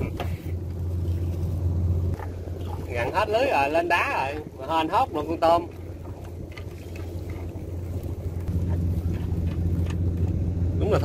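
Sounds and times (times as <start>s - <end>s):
boat engine running: 0.0s - 11.0s.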